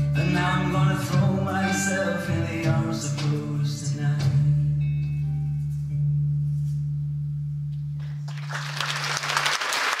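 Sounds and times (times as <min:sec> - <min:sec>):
audience applause: 0:08.0 - 0:10.0.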